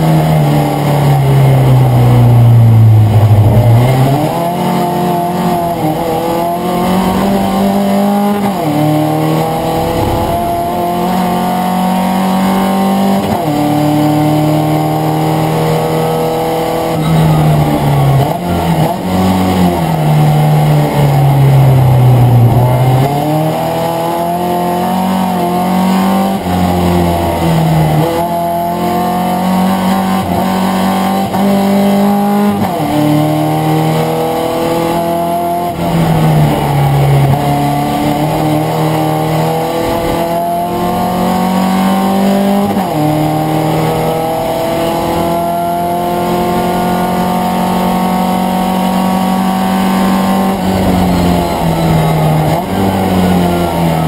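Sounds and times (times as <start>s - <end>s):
race car engine accelerating: 0.0s - 54.0s.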